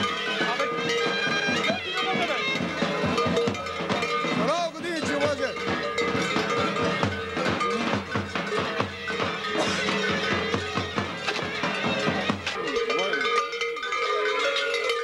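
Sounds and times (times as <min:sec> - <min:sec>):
bagpipe folk dance tune: 0:00.0 - 0:13.2
crowd voices: 0:00.0 - 0:15.0
large bells clanking: 0:00.0 - 0:15.0.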